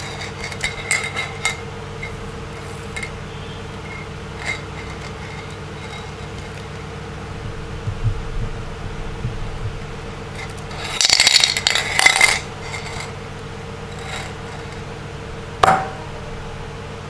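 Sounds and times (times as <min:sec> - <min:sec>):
low hum: 0:00.0 - 0:17.0.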